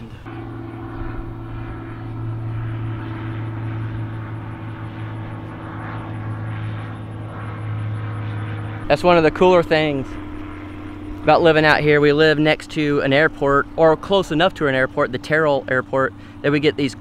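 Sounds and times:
propeller airplane drone: 0:00.0 - 0:17.0.

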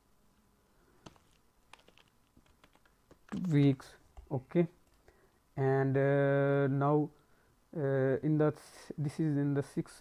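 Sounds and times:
faint typing on keyboard: 0:01.0 - 0:05.4.

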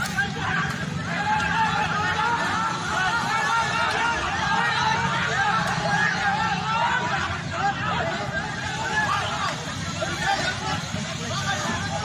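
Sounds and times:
people talking and shouting: 0:00.0 - 0:12.0
vehicle engine rumble: 0:00.0 - 0:12.0.

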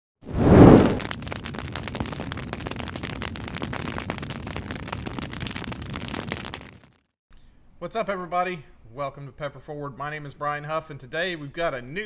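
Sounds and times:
fire crackling: 0:00.2 - 0:07.1.

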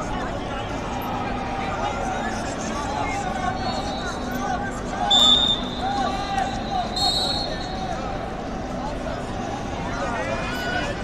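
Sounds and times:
high whistle tone: 0:05.1 - 0:07.8.

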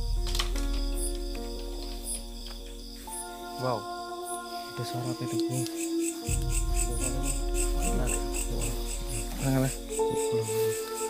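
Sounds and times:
crickets chirping: 0:00.0 - 0:11.0
low musical drone: 0:00.0 - 0:11.0.

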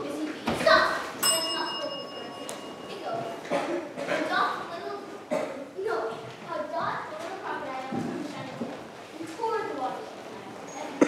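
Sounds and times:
bright bell-like ding: 0:01.2 - 0:03.4.

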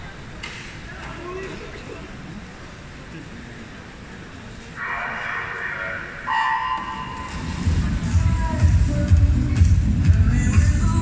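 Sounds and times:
loud low din: 0:06.1 - 0:11.0.

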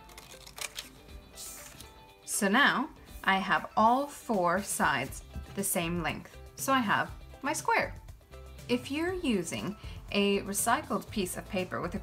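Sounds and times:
scissors snipping paper: 0:00.0 - 0:01.9
paper rustling: 0:00.0 - 0:02.0
soft background music: 0:00.0 - 0:12.0.

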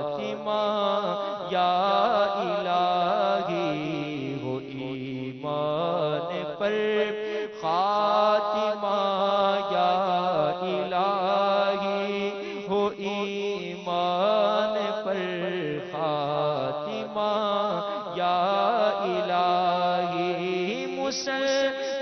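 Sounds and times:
man chanting: 0:00.0 - 0:22.0.

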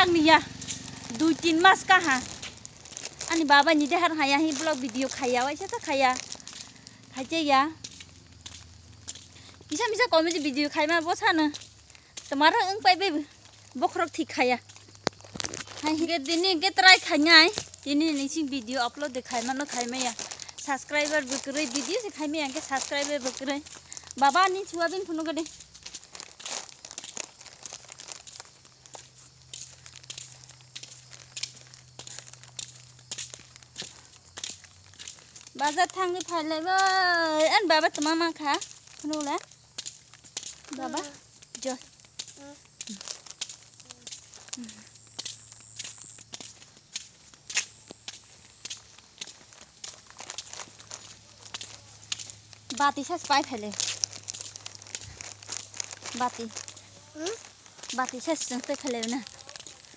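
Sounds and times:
rustling and crinkling: 0:00.0 - 0:59.9
child voice sounds: 0:40.7 - 0:41.2, 0:42.3 - 0:43.0, 0:43.8 - 0:44.7, 0:56.1 - 0:57.5.

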